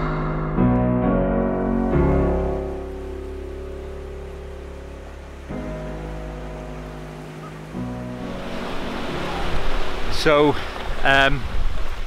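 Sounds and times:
soft piano chords: 0.0s - 11.0s
sea surf washing on shore: 2.8s - 12.0s.

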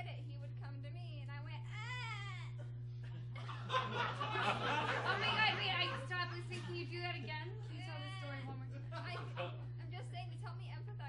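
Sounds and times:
low electrical hum: 0.0s - 11.0s.

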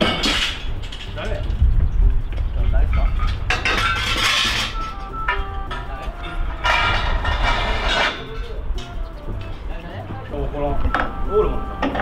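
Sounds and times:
metal scaffolding parts clattering: 0.0s - 1.5s, 2.9s - 8.9s
steady low rumble: 0.0s - 12.0s.

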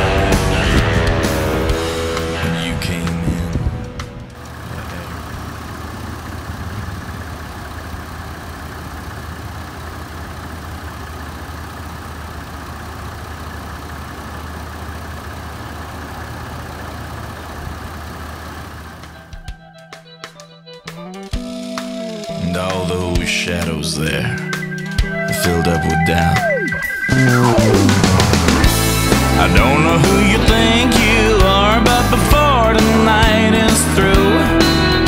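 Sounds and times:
music: 0.0s - 4.4s, 19.1s - 35.0s
car engine idling: 0.0s - 19.6s, 21.2s - 35.0s.

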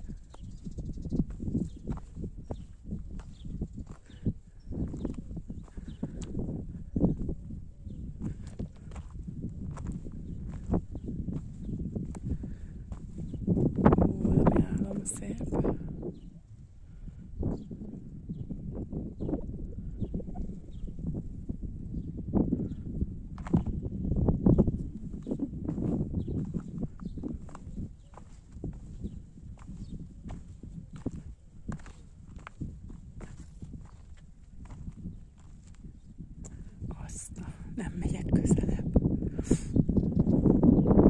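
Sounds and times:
steady low rumble: 0.0s - 39.8s
footsteps on rocky ground: 1.2s - 7.4s, 8.0s - 15.8s, 23.4s - 23.8s, 24.5s - 37.6s.

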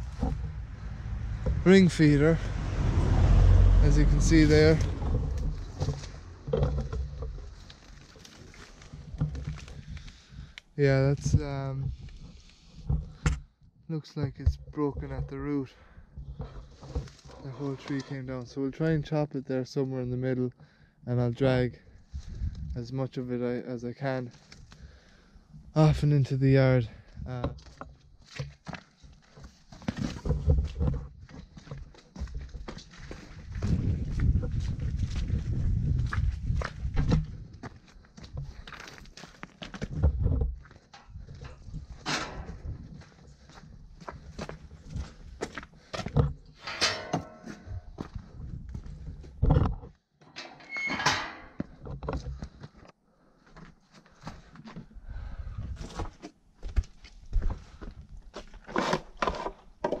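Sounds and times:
footsteps: 29.4s - 49.0s.

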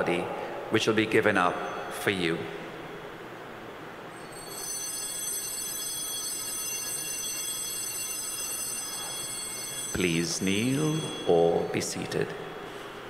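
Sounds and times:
high shimmering bells ringing: 4.1s - 13.0s.

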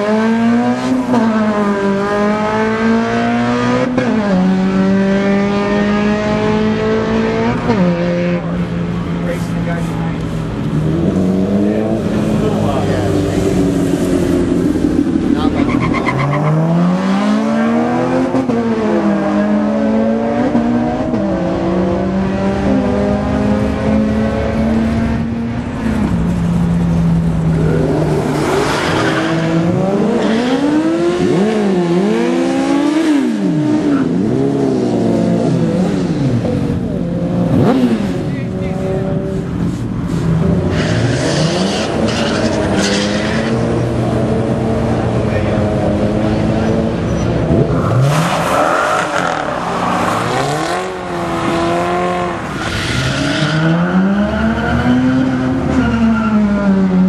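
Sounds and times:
car engines revving: 0.0s - 57.0s.

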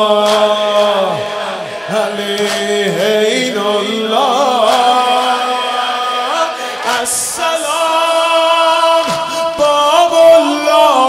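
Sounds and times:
crowd of men chanting: 0.0s - 11.0s
man chanting through a microphone: 0.0s - 11.0s.

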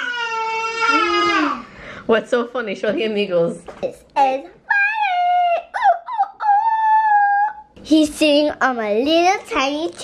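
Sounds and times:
high-pitched voice crying: 0.0s - 1.7s, 4.7s - 7.8s.

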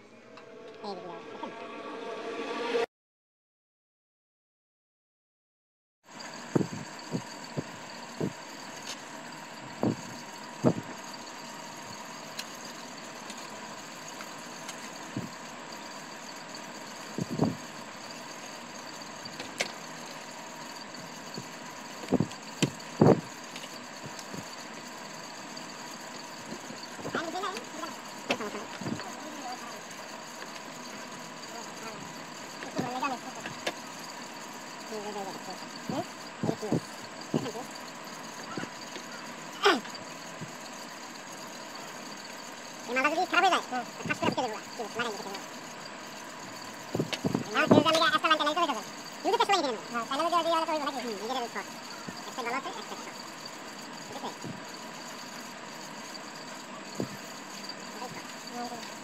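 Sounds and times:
electrical hum with high whine: 0.0s - 2.9s, 6.1s - 59.0s
faint wavering voices: 0.0s - 2.9s, 14.5s - 59.0s.

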